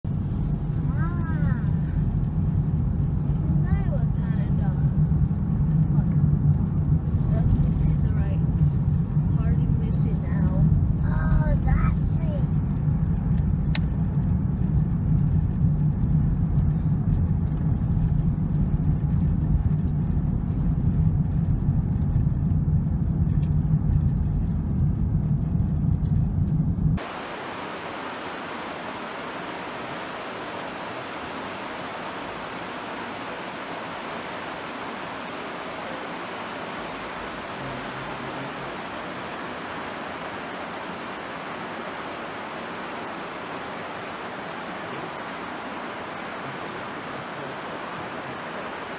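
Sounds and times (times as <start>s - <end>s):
car road rumble: 0.0s - 48.9s
river water over rocks: 27.0s - 48.9s.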